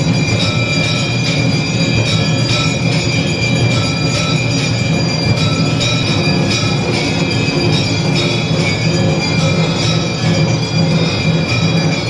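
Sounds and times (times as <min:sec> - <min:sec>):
bells ringing: 0:00.0 - 0:12.0
percussion beats: 0:00.0 - 0:12.0.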